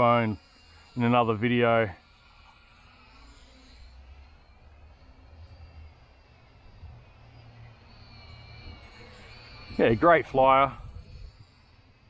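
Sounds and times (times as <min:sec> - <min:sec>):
toy drone buzzing overhead: 0:00.0 - 0:12.0
wind rumble on microphone: 0:08.5 - 0:12.0.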